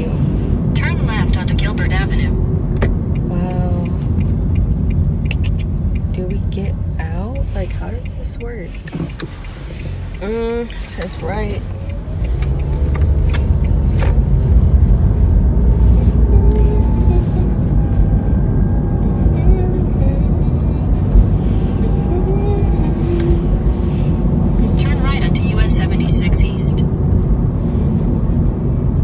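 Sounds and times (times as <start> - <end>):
road and engine rumble: 0.0 - 29.0.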